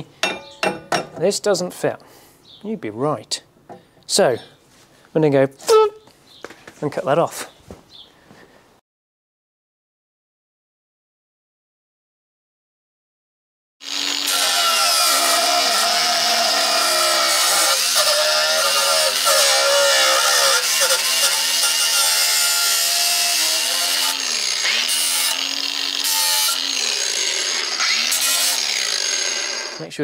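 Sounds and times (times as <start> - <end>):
angle grinder cutting metal: 13.8 - 29.9.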